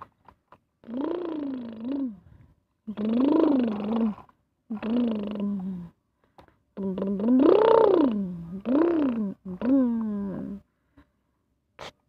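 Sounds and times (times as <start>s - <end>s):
person imitating engine with voice: 0.8s - 2.2s, 2.9s - 5.9s, 6.8s - 10.6s.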